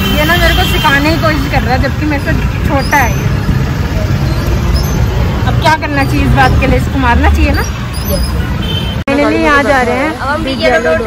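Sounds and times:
road rumble: 0:00.0 - 0:11.0.

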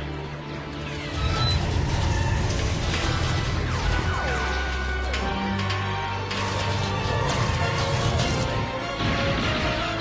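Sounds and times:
orchestral action music: 0:00.0 - 0:10.0.

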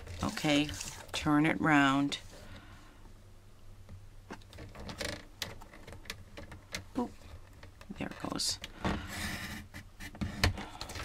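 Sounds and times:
paper scraping: 0:00.0 - 0:01.2.

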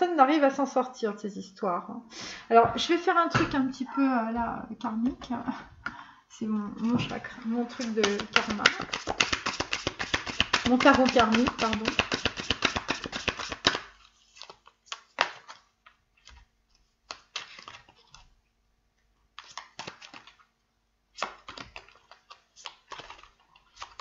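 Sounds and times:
cards tapping and rustling: 0:06.8 - 0:18.3, 0:19.3 - 0:20.5, 0:21.1 - 0:24.0
cards shuffling rattle: 0:07.7 - 0:16.5, 0:17.1 - 0:18.3, 0:19.4 - 0:20.4, 0:21.2 - 0:24.0.

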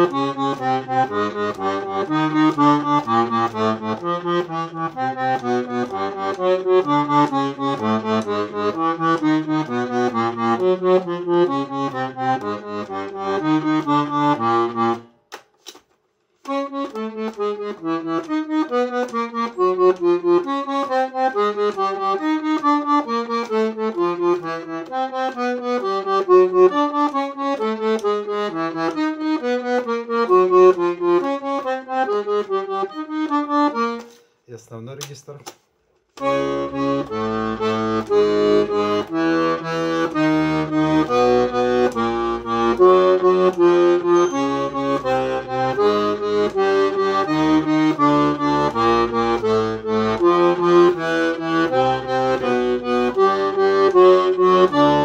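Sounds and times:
accordion bass notes and chords: 0:00.0 - 0:55.0.

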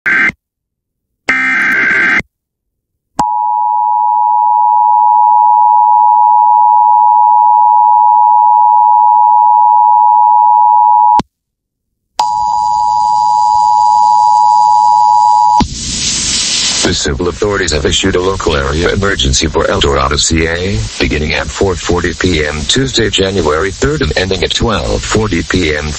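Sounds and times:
hiss and high whistles: 0:15.6 - 0:16.9
announcer speaking: 0:16.9 - 0:25.9.

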